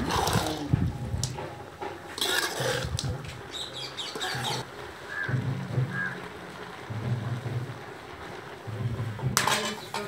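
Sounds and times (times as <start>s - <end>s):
metal spatula scraping pot: 0.0s - 0.8s, 2.0s - 3.2s
frying sizzle: 1.0s - 10.0s.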